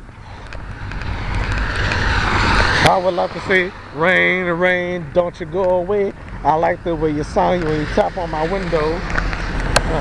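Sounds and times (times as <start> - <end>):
car tyres hissing on wet road: 6.8 - 10.0.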